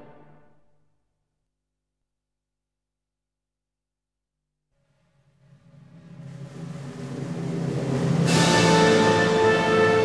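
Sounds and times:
orchestral music low sustained notes: 0:05.8 - 0:10.0.

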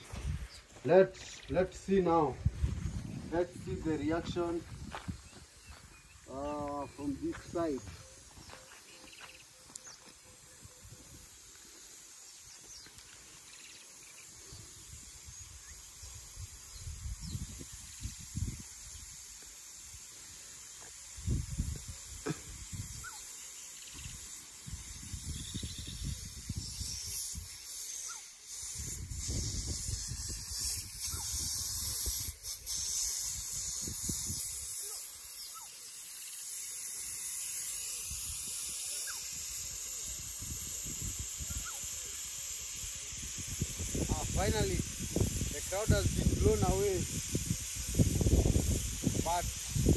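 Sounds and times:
wind on microphone: 0:00.0 - 0:00.6, 0:02.1 - 0:08.1, 0:14.5 - 0:19.2, 0:21.2 - 0:23.2, 0:24.0 - 0:27.5, 0:28.8 - 0:34.7, 0:38.1 - 0:41.9, 0:42.8 - 0:49.9
water spraying from sprinklers: 0:00.0 - 0:49.9.

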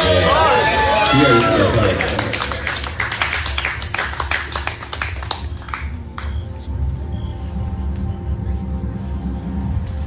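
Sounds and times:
low musical drone: 0:00.0 - 0:10.0
audience hand clapping: 0:01.0 - 0:06.6.

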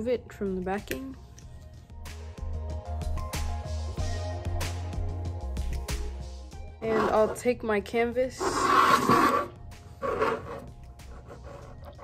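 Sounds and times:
canvas scraping across tabletop: 0:06.8 - 0:07.4, 0:08.4 - 0:11.7.

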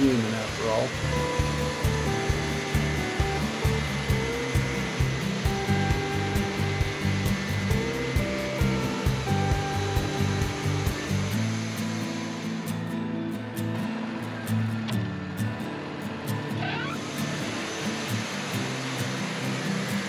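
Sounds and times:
band sawmill cutting log: 0:00.0 - 0:12.6, 0:16.6 - 0:20.0
background music with steady beat: 0:00.0 - 0:16.6.

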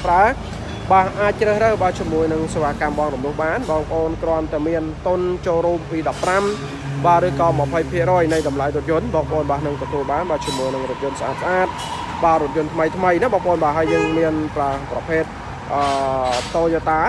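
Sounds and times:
person talking: 0:12.6 - 0:16.4.

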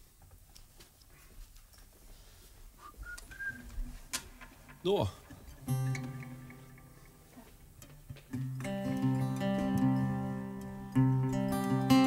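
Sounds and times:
acoustic guitar chord strummed: 0:05.5 - 0:12.0.

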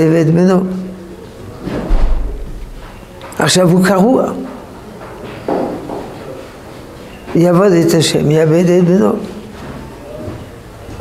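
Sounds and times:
faint indistinct background sounds: 0:00.0 - 0:11.0.

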